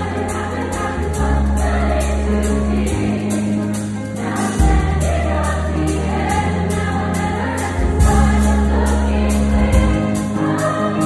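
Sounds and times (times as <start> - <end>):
girls' choir singing: 0.0 - 11.0
sustained bass accompaniment: 0.0 - 11.0.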